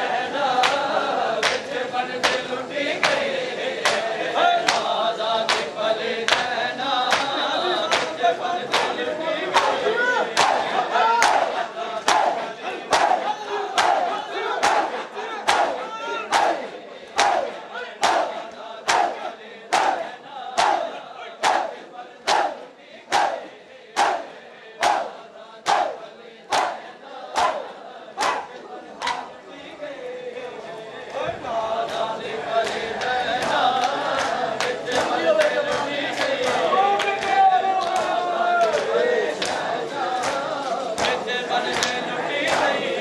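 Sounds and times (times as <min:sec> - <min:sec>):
crowd shouting and chanting: 0:00.0 - 0:43.0
palms slapping bare chests: 0:10.4 - 0:16.6, 0:17.2 - 0:23.4, 0:24.0 - 0:29.3.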